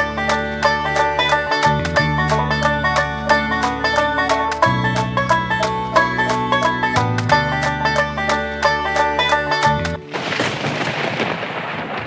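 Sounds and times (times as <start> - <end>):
heavy rain: 10.0 - 12.0
thunder rumble: 10.1 - 12.0.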